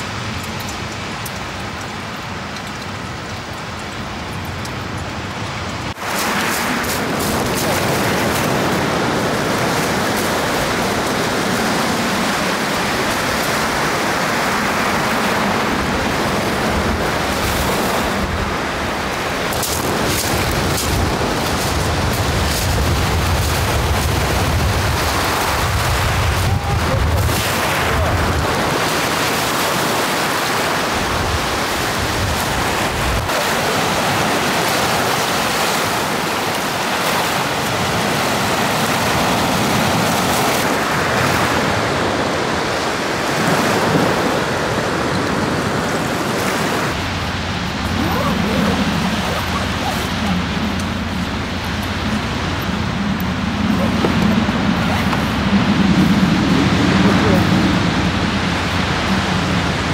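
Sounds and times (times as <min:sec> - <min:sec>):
waves breaking on pebble beach: 0:00.0 - 0:59.9.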